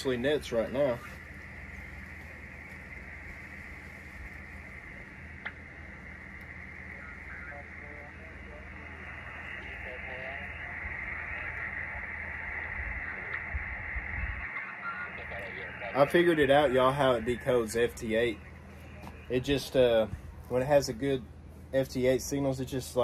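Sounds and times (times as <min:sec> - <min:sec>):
faint warbling signals: 0:00.0 - 0:20.0
radio receiver static: 0:00.0 - 0:20.8.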